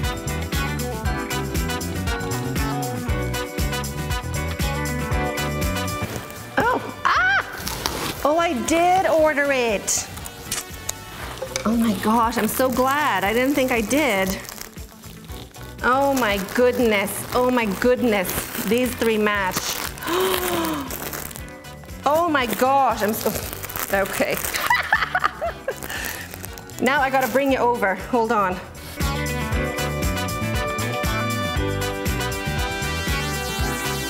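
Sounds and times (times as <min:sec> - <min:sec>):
plastic packaging crinkling: 0:07.3 - 0:27.7.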